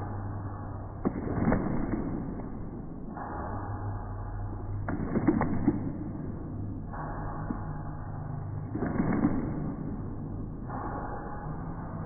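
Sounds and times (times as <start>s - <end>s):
low hum: 0.0s - 12.0s
sharp clap: 1.0s - 3.5s, 4.7s - 7.8s, 8.6s - 11.3s.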